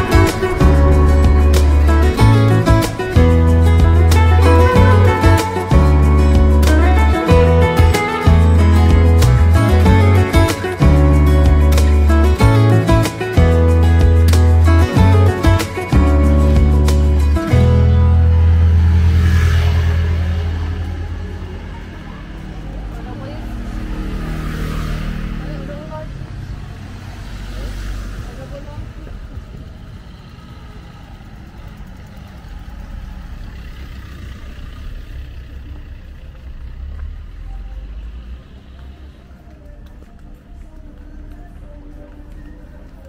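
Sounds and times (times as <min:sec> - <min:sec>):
passers-by talking: 0:00.0 - 0:43.0.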